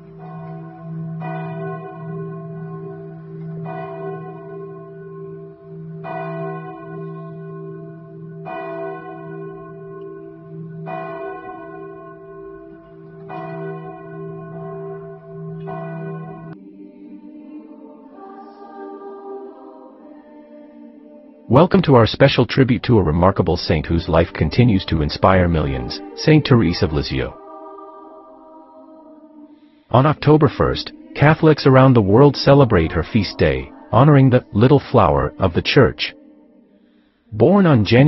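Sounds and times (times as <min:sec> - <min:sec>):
church bell tolling: 0:00.0 - 0:16.6, 0:22.6 - 0:27.8, 0:29.9 - 0:36.2
soft music: 0:16.5 - 0:38.0.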